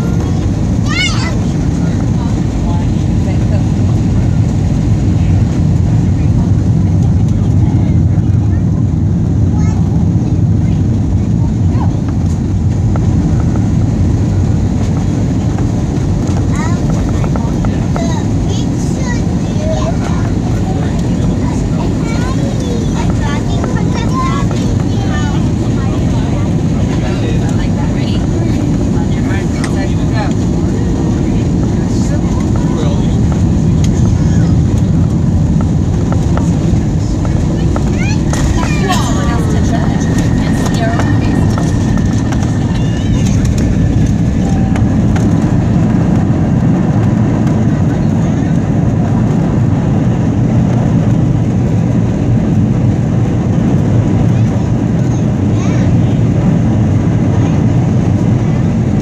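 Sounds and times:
faint voices: 0.0s - 59.0s
jet engines and airflow rumble: 0.0s - 59.0s.

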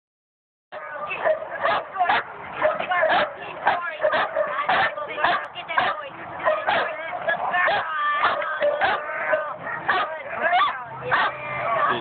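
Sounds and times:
puppy barking: 0.8s - 11.3s.

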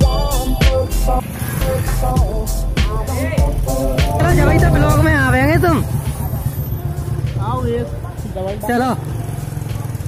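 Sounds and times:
motorcycle engine rumbling: 0.0s - 10.0s
person speaking: 3.8s - 5.9s.

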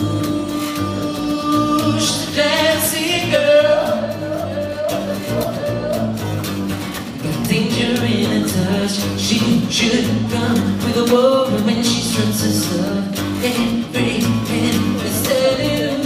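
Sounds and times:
man singing: 0.0s - 6.4s, 7.2s - 16.0s
strummed acoustic guitar: 0.0s - 16.0s.

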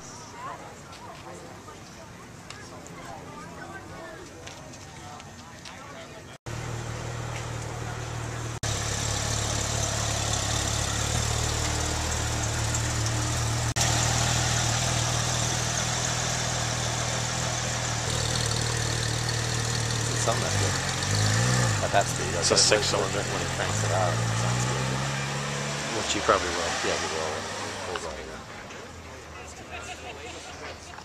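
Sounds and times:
car engine idling: 6.5s - 28.0s.

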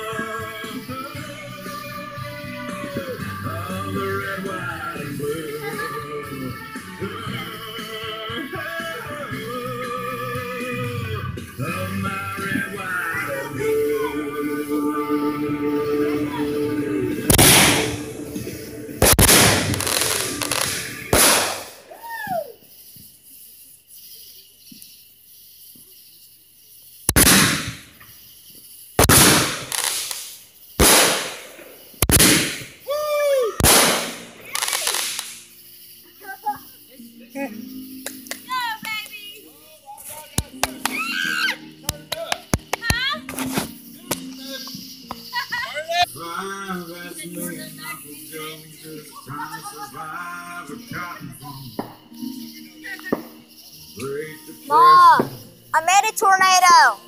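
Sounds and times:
people's voices: 0.0s - 22.6s, 32.9s - 35.4s, 36.0s - 57.0s
firework bangs: 17.1s - 23.0s, 27.1s - 28.2s, 29.0s - 32.9s, 33.6s - 35.6s
rapid firework crackling: 17.2s - 32.9s, 33.6s - 36.0s.

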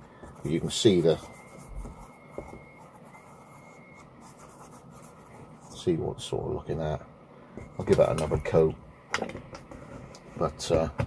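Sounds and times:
thin high whine: 0.0s - 9.2s.

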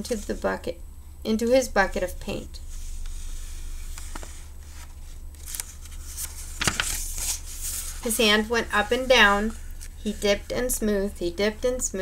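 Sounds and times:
steady low hum: 0.0s - 12.0s
paper page rustling: 2.7s - 10.2s.

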